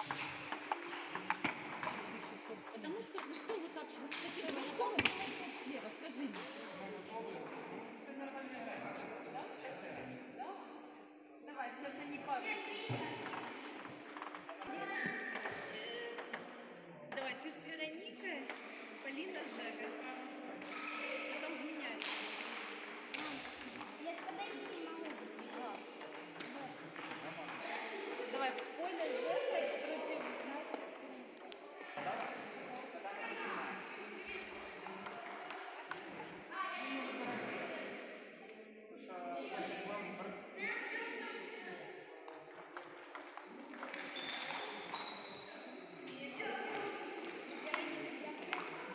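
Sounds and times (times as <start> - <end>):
table tennis balls clicking: 0.0 - 5.2, 13.2 - 17.5, 19.7 - 27.6, 34.3 - 36.3, 42.3 - 45.2, 48.5 - 48.8
voices talking in a large hall: 0.0 - 48.9
table tennis ball clicks: 13.2 - 14.7, 42.4 - 45.0.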